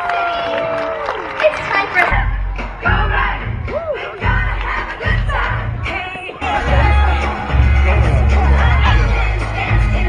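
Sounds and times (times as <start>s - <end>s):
show music with heavy bass: 2.0s - 10.0s.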